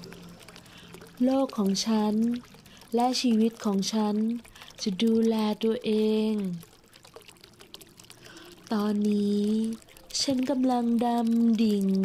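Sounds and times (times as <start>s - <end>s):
woman speaking calmly: 1.2s - 6.6s, 8.7s - 12.0s.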